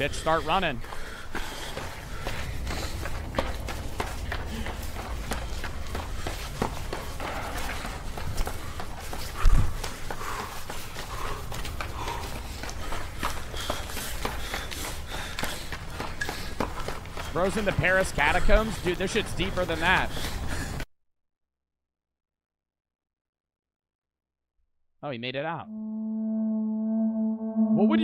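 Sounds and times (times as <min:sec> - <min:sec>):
footsteps running up concrete stairs: 0:00.0 - 0:20.9.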